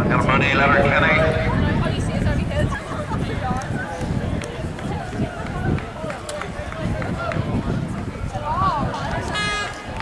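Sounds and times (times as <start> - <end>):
indistinct talking voices: 0.0 - 10.0.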